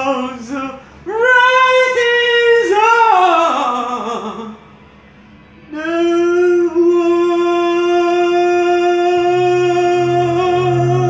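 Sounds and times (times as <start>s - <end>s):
man singing unaccompanied: 0.0s - 4.6s, 5.7s - 11.0s.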